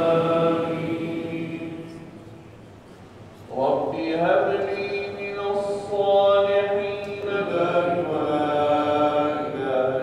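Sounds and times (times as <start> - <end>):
man chanting prayer: 3.5 - 10.0.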